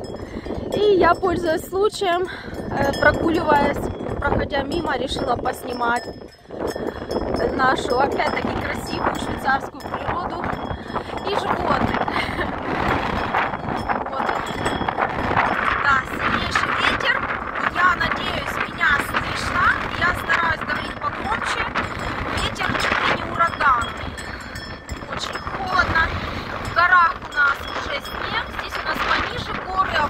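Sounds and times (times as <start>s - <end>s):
gusty wind buffeting microphone: 0.0s - 30.0s.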